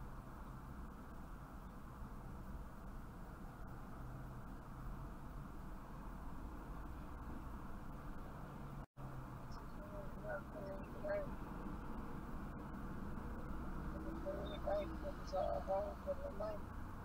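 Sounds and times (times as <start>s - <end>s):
car engine idling in cabin: 0.0s - 17.0s.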